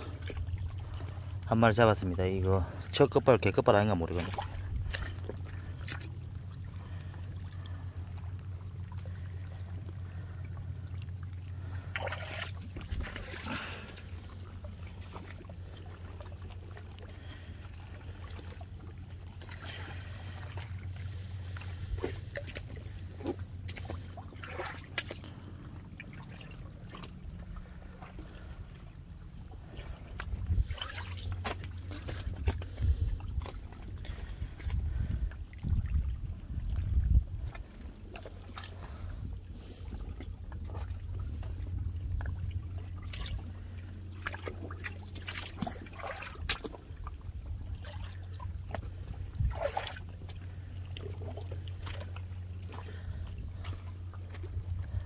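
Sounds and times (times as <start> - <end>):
soft water splashes: 0.0 - 55.0
steady low rumble: 0.0 - 55.0
water sloshing and trickling: 0.0 - 55.0
wind buffeting microphone: 30.0 - 31.0, 32.3 - 37.9, 48.9 - 49.7.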